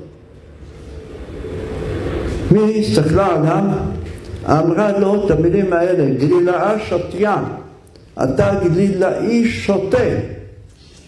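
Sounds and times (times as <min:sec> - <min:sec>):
low rumble: 0:00.0 - 0:05.7.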